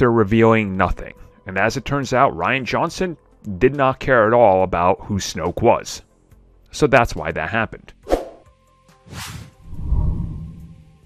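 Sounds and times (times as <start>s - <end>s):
quick swoosh: 8.1s - 8.5s, 9.1s - 10.7s
deep low rumble: 9.6s - 11.0s.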